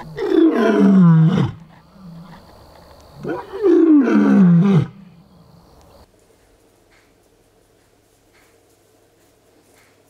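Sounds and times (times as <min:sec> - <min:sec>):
lion roaring: 0:00.0 - 0:02.4, 0:03.2 - 0:05.2.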